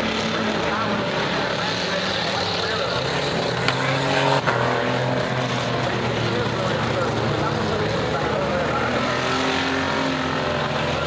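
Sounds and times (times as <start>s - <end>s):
race car engines running: 0.0s - 11.0s.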